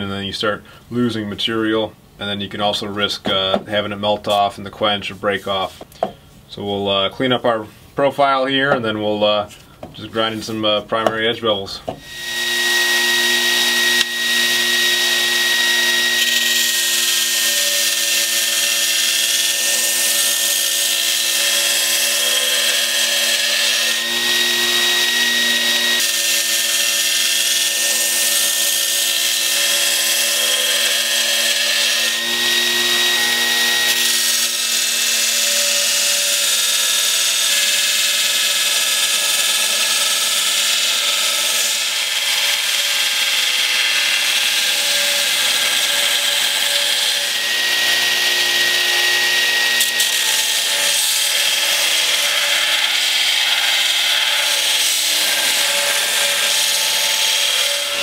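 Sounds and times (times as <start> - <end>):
belt grinder motor hum and whine: 12.0 - 58.0.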